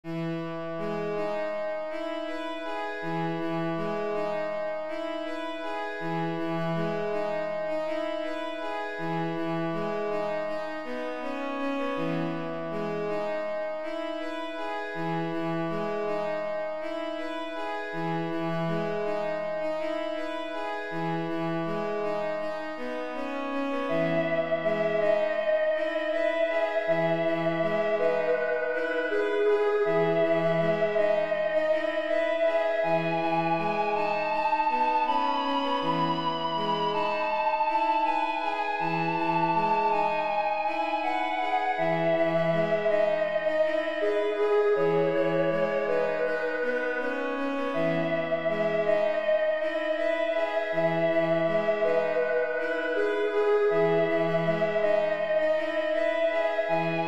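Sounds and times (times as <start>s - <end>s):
slow instrumental music: 0.0s - 57.0s
wavering lead melody: 0.2s - 57.0s.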